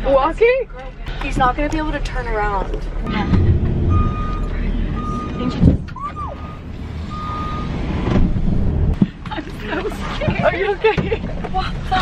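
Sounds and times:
van engine rumble: 0.0s - 12.0s
reversing alarm beeps: 3.1s - 7.7s.

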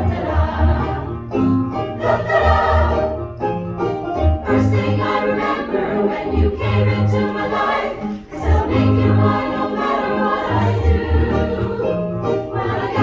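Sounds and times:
choir singing in harmony: 0.0s - 3.3s, 4.4s - 13.0s
amplified keyboard: 0.0s - 13.0s.

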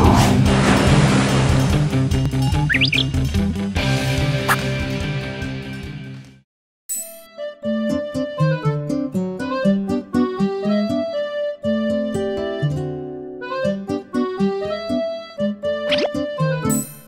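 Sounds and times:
bouncy background music: 1.6s - 5.8s, 7.1s - 17.0s.

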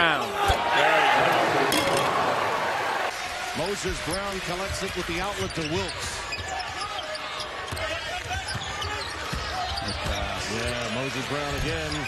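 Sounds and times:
arena crowd noise: 0.0s - 12.0s
sneakers squeaking: 4.0s - 12.0s.

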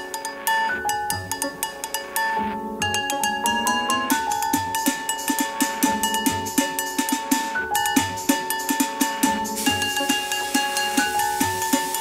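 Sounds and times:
pots and buckets percussion: 0.0s - 12.0s
deep beat: 2.8s - 12.0s.

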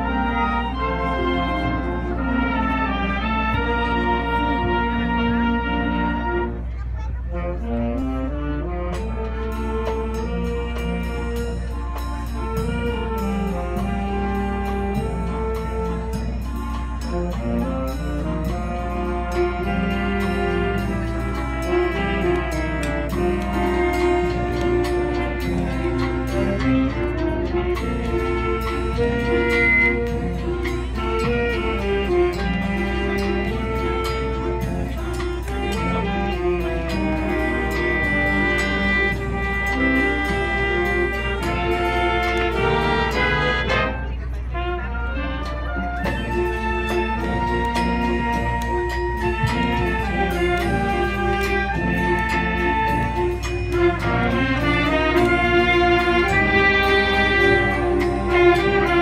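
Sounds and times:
brass sustained chords: 0.0s - 59.0s
light percussion beat: 0.0s - 59.0s
strings playing: 0.0s - 59.0s.

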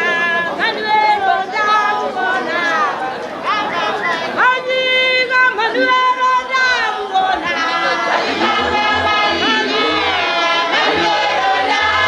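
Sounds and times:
choir singing: 7.1s - 12.0s.

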